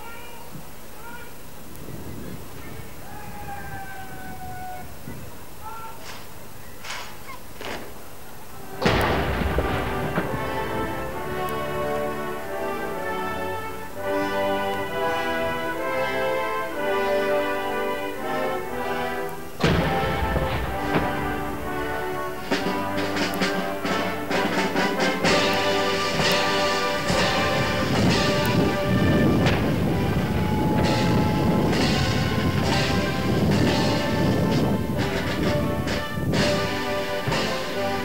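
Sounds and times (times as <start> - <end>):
band music playing: 8.7 - 38.0
field gun firing: 8.8 - 12.6, 19.6 - 29.8.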